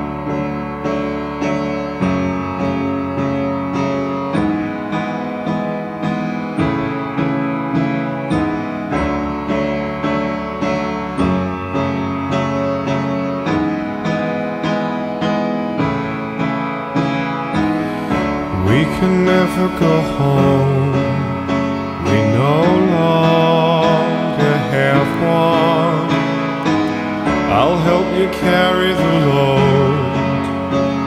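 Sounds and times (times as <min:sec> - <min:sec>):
piano playing: 0:00.0 - 0:31.0.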